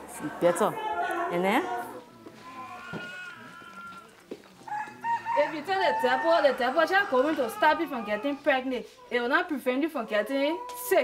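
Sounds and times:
rooster crowing: 4.7s - 8.4s.

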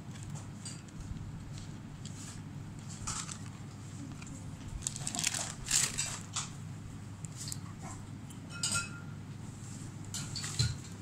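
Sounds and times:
plastic packet crinkling: 4.6s - 6.3s.

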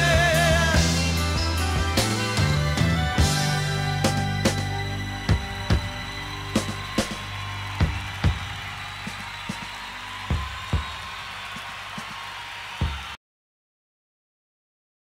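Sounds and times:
rock music chord ringing: 0.0s - 8.4s
irregular drum hits: 3.2s - 13.2s.

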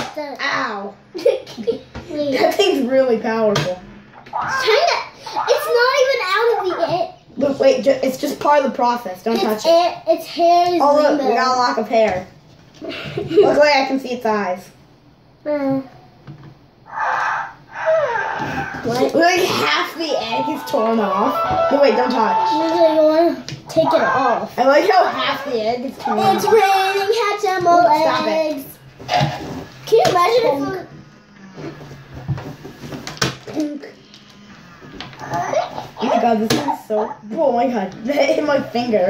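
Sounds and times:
electronic chirps and cries: 16.9s - 18.9s, 20.0s - 23.1s.

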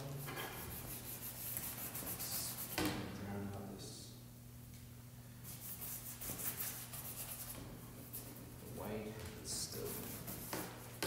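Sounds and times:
low steady hum: 0.0s - 11.0s
paintbrush scratching: 0.4s - 2.8s, 5.5s - 8.4s, 9.6s - 10.8s.

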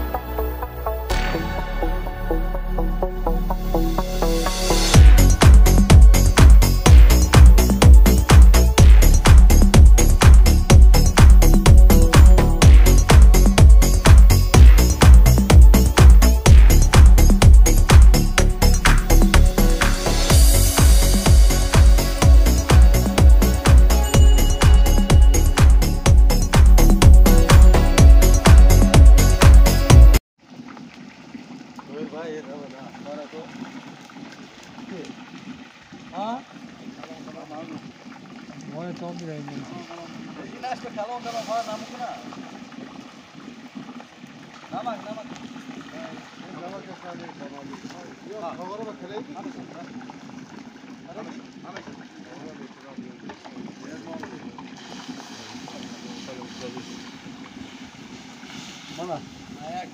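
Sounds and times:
loud dance music: 1.1s - 30.2s
men's voices talking: 31.9s - 33.6s, 36.1s - 38.0s, 38.6s - 42.5s, 44.7s - 50.3s, 51.0s - 57.2s, 58.8s - 59.9s
light hiss: 54.7s - 59.8s.

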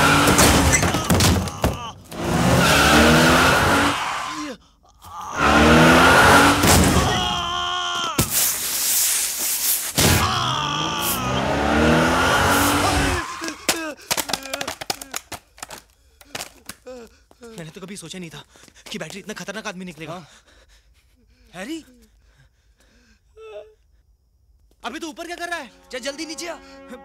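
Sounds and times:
car engine revving: 0.0s - 0.7s, 2.1s - 4.0s, 5.4s - 7.1s, 10.8s - 13.3s
tyre squeal: 0.0s - 4.4s
knocks and clatter: 0.2s - 2.2s.

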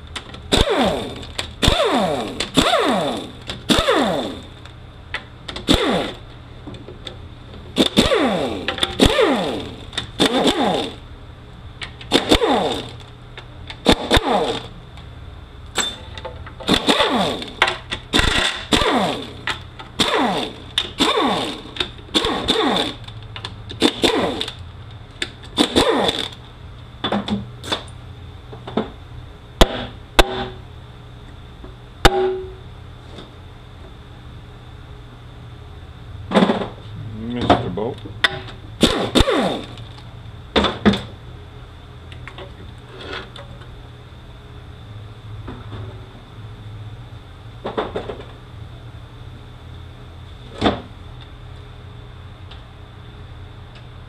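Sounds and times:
air ratchet whirring: 0.5s - 4.6s, 5.6s - 6.2s, 7.8s - 11.0s, 12.0s - 13.1s, 13.8s - 14.8s, 16.7s - 24.6s, 25.5s - 26.4s, 38.8s - 40.0s.

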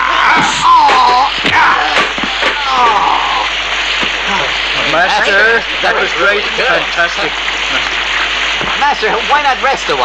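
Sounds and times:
sharp fight cracks: 0.0s - 3.2s
drawn-out falling cry: 0.0s - 4.8s
pouring water hiss: 0.0s - 10.0s.

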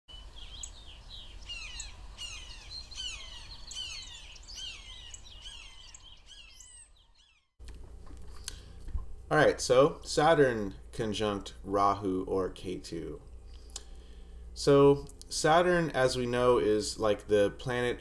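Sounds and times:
birds chirping: 0.1s - 7.6s.

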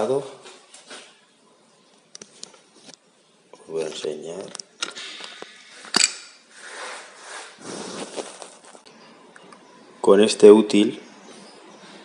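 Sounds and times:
rustling and scraping handling noise: 3.8s - 8.9s.

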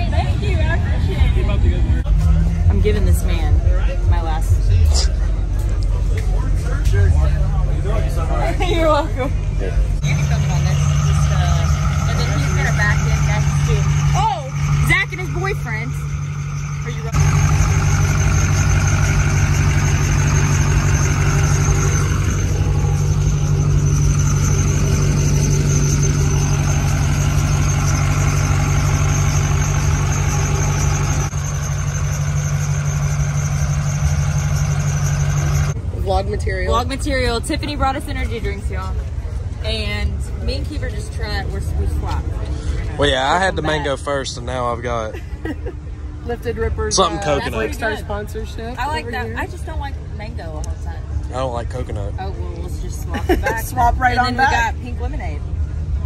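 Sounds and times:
people's voices in background: 0.0s - 14.9s
truck engine idling: 0.0s - 56.0s.

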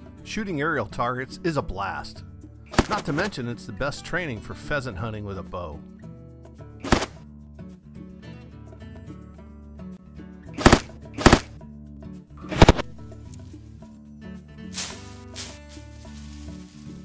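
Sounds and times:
background music: 0.0s - 17.0s
sharp cracks of arrows hitting jugs: 2.7s - 3.4s, 6.8s - 7.2s, 10.6s - 11.6s, 12.5s - 13.1s, 14.7s - 15.7s.

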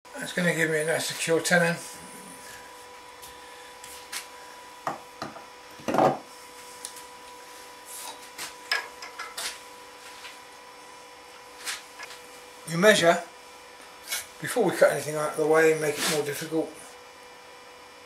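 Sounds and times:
faint steady hum: 0.1s - 18.0s.

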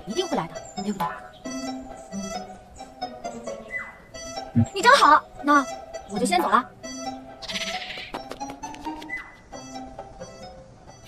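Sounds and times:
plucked notes over held tones: 0.0s - 11.0s.

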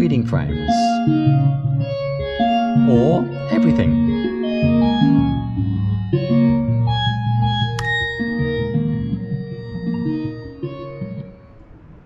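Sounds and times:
computer-generated music: 0.0s - 12.0s
sustained pad tones: 1.1s - 12.0s.

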